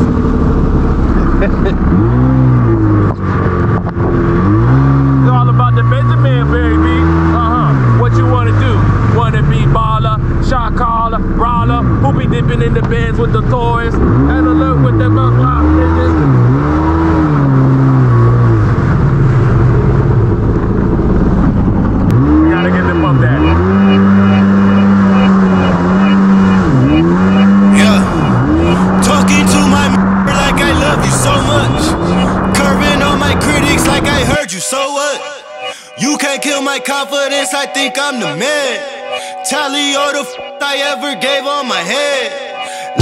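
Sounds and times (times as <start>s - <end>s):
jet ski engine revving: 0.0s - 9.4s, 22.0s - 34.4s.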